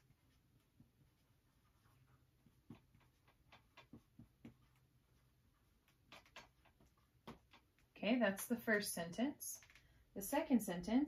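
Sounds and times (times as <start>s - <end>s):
marker tapping on whiteboard: 2.4s - 4.8s, 5.8s - 7.8s.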